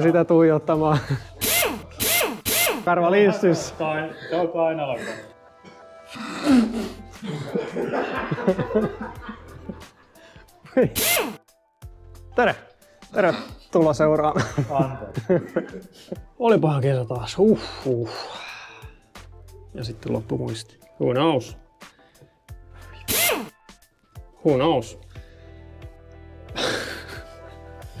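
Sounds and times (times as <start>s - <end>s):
background music: 0.0s - 28.0s.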